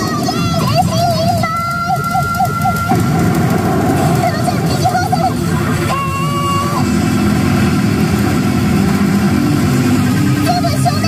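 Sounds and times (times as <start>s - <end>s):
warbling electronic tone: 1.8s - 11.0s
steady high electronic tone: 2.9s - 11.0s.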